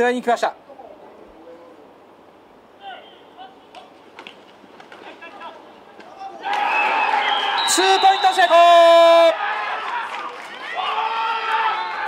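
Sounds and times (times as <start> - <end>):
faint open-air ambience: 0.0 - 12.0
distant shouted call: 2.7 - 4.0, 5.0 - 12.0.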